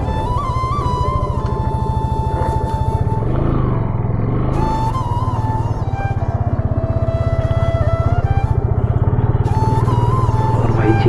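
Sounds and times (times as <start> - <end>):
background music: 0.0 - 11.0
motorcycle engine running: 0.0 - 11.0.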